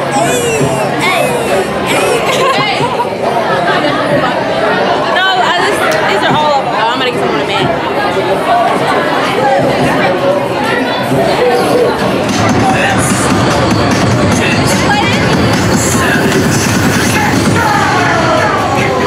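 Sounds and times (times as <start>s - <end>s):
young women chattering: 0.0s - 4.4s
crowd murmur in a hall: 0.0s - 19.0s.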